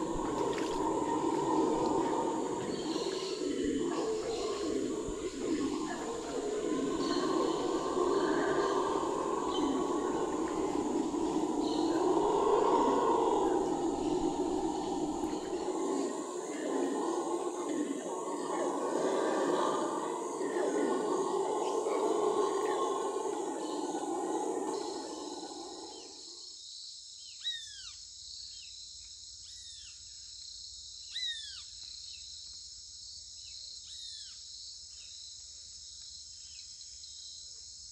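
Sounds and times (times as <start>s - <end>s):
howler monkeys roaring: 0.0s - 26.4s.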